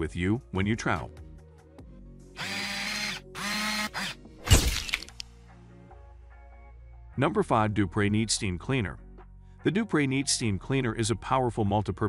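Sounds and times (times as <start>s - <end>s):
soft background music: 0.0s - 12.0s
whirring drill-like sound effect: 2.4s - 5.1s.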